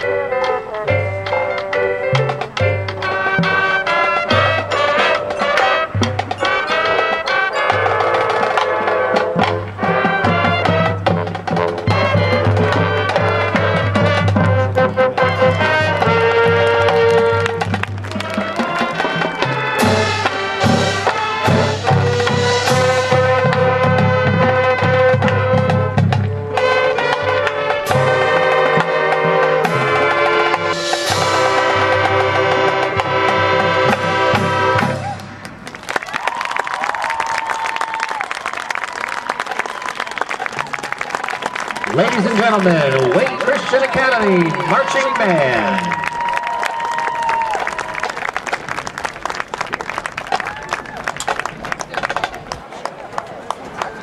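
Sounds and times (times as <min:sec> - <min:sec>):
marching band playing: 0:00.0 - 0:54.0
audience applause and cheering: 0:15.6 - 0:21.4, 0:34.6 - 0:54.0.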